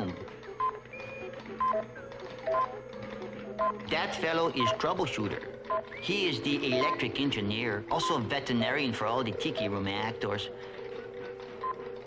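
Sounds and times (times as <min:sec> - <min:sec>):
electrical hum: 0:00.0 - 0:12.0
alternating high and low beeps: 0:00.5 - 0:10.0.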